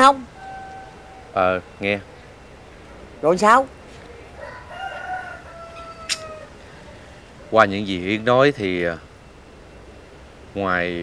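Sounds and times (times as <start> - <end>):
rooster crowing: 4.3 - 7.5.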